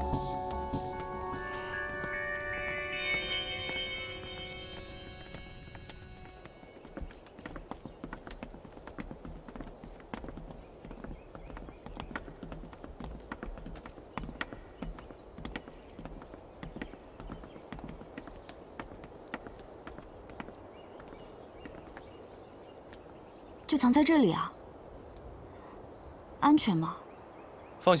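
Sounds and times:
footsteps on wooden boards: 0:00.0 - 0:23.2.

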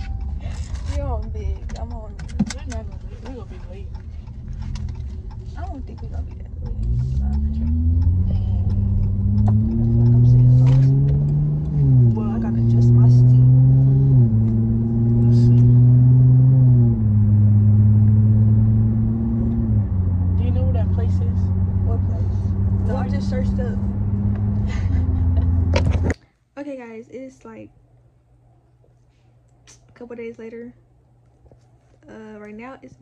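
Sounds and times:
car engine accelerating: 0:00.0 - 0:26.2.

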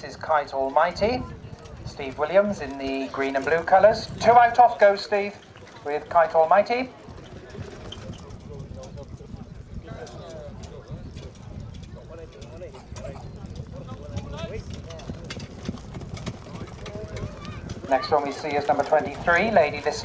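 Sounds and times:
hoofbeats on grass: 0:00.6 - 0:20.0.

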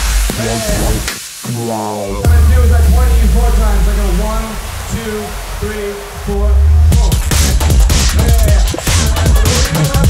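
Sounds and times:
dubstep track: 0:00.0 - 0:10.0
sampled voice counting: 0:01.6 - 0:07.5.

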